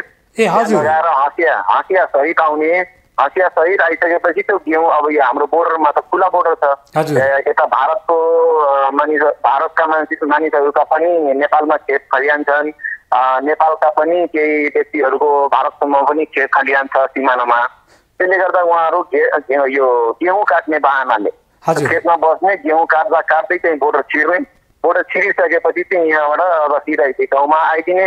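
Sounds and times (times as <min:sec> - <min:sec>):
man talking over telephone: 0:00.0 - 0:28.0.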